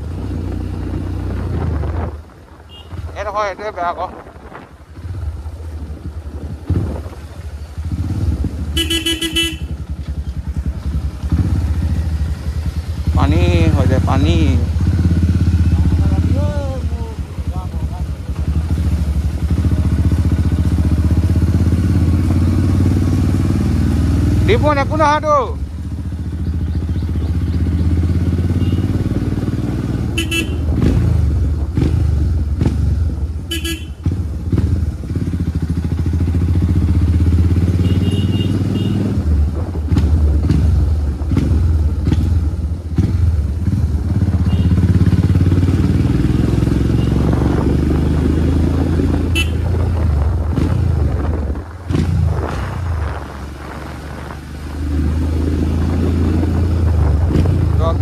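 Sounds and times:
motorcycle engine rumble: 0:00.0 - 0:58.0
horn toots: 0:02.7 - 0:03.1, 0:08.7 - 0:09.8, 0:28.5 - 0:29.1, 0:30.0 - 0:30.9, 0:33.5 - 0:34.1, 0:37.7 - 0:39.2, 0:44.4 - 0:45.0, 0:49.2 - 0:50.0.

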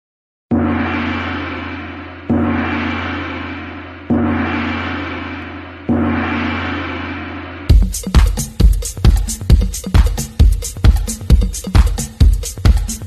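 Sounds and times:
gong strikes: 0:00.5 - 0:07.5.

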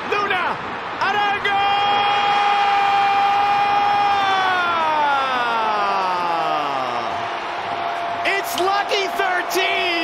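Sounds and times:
crowd noise: 0:00.0 - 0:10.0
stadium goal siren wailing: 0:01.8 - 0:07.0.

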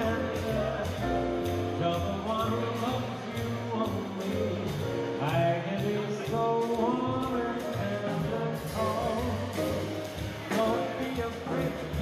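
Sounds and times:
drum kit: 0:00.0 - 0:12.0
man singing: 0:00.0 - 0:12.0
upright double bass: 0:00.0 - 0:12.0.

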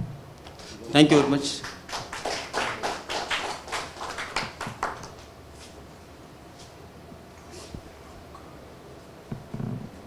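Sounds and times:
sparse applause: 0:00.6 - 0:05.2.

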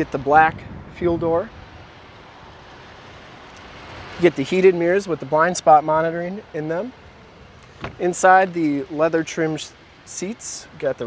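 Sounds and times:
wind on microphone: 0:00.0 - 0:02.0
low rumble and hiss: 0:00.0 - 0:11.0.

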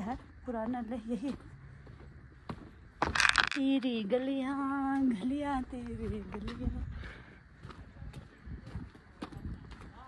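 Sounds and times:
footsteps on dirt and stone: 0:00.0 - 0:10.0.

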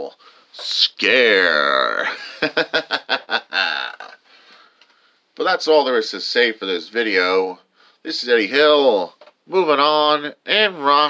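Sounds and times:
man laughing: 0:01.7 - 0:04.2.

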